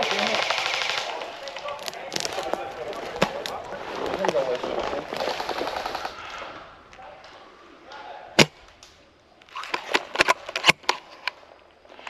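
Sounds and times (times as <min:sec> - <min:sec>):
airsoft gun full-auto burst: 0:00.0 - 0:01.3.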